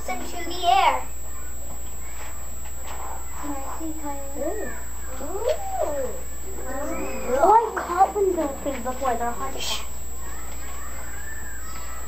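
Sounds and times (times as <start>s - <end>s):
children making ooh sounds: 3.4s - 8.8s, 9.5s - 12.0s.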